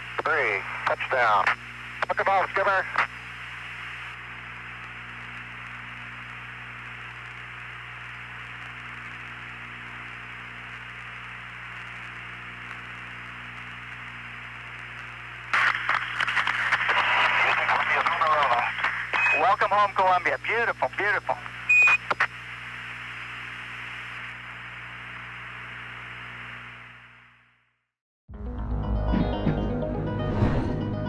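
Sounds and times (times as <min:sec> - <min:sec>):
radio transmission with voices: 0:00.0 - 0:07.4, 0:10.8 - 0:26.7
radio channel hiss: 0:00.0 - 0:27.2.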